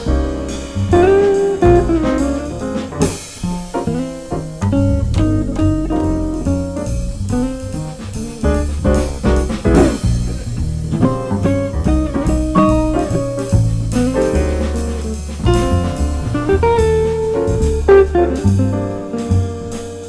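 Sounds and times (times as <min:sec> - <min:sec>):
drum kit: 0:00.0 - 0:20.0
piano: 0:00.0 - 0:20.0
upright bass: 0:00.0 - 0:20.0
electric guitar: 0:00.9 - 0:08.0.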